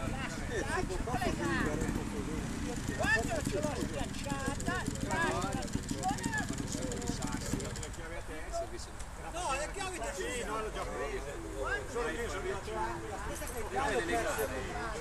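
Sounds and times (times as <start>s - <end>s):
motorcycle engine idling: 0.0s - 8.2s
indistinct voices talking: 0.0s - 8.8s.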